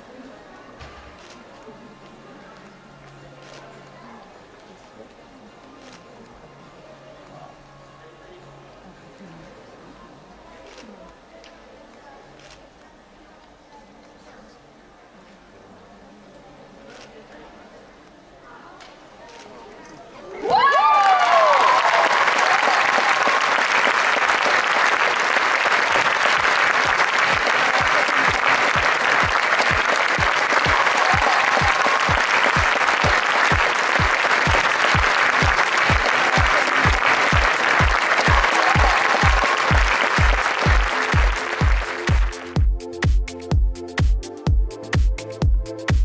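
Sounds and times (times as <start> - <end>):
audience applauding and cheering: 20.4 - 43.2
music with bass beat: 27.8 - 46.0.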